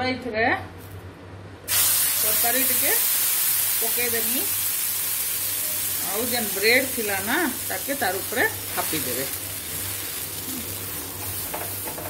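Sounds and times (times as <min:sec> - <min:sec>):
butter sizzling on a pan: 0:01.7 - 0:12.0.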